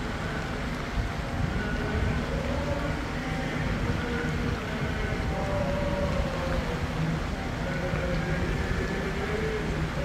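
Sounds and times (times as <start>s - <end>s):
people chanting a hymn: 0.0s - 10.0s
street traffic rumble: 0.0s - 10.0s.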